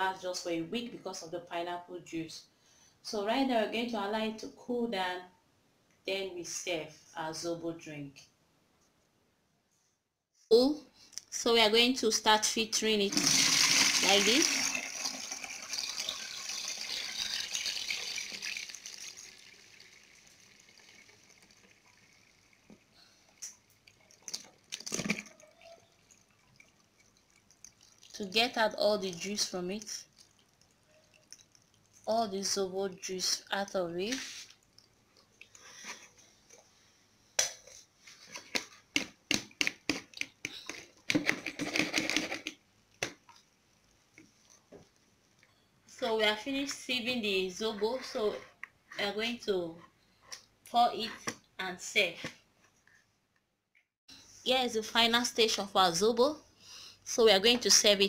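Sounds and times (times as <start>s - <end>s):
liquid pouring through a sieve: 13.1s - 32.1s.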